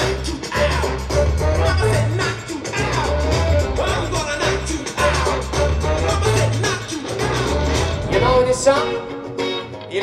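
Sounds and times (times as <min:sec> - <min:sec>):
person singing: 0:00.0 - 0:10.0.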